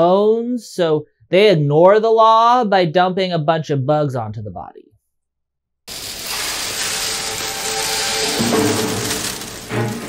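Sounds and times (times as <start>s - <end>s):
drama background music: 7.7s - 10.0s.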